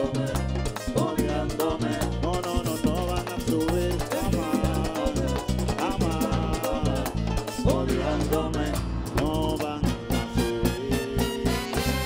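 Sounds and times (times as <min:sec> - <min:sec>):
congas: 0:00.0 - 0:12.0
man singing into a microphone: 0:00.0 - 0:12.0
tambora drum: 0:00.0 - 0:12.0
saxophones: 0:09.9 - 0:12.0.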